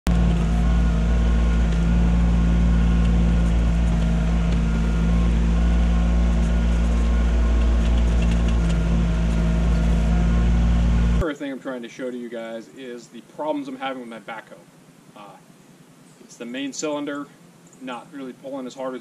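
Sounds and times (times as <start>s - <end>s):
diesel tractor engine running: 0.0s - 11.2s.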